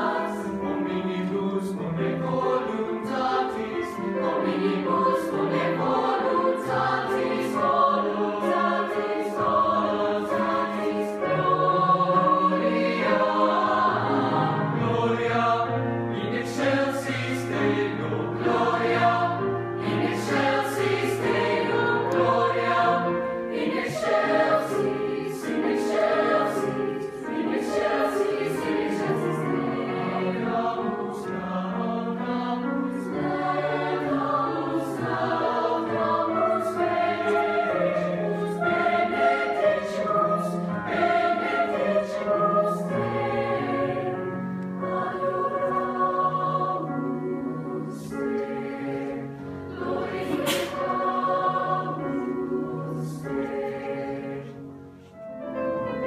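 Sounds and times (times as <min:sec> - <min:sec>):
choir singing in harmony: 0:00.0 - 0:56.0.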